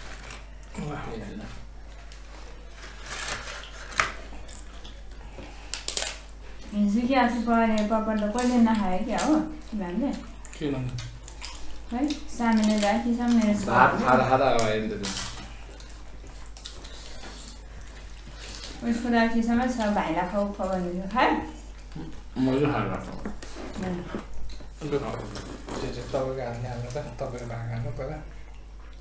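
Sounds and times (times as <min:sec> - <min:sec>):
soft chewing: 0:00.0 - 0:06.8, 0:07.4 - 0:29.0
crisp flatbread cracking: 0:02.0 - 0:06.3.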